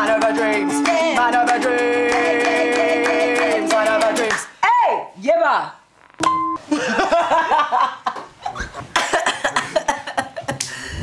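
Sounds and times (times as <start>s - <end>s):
women laughing: 6.7s - 10.6s.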